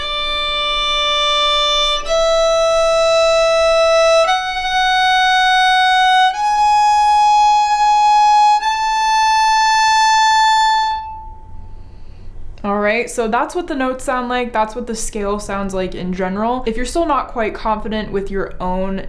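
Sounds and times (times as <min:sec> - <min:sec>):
solo violin playing a scale: 0:00.0 - 0:11.8.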